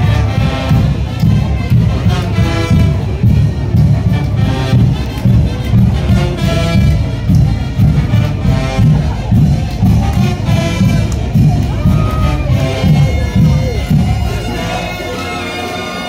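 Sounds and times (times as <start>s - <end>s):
brass band playing: 0.0s - 16.0s.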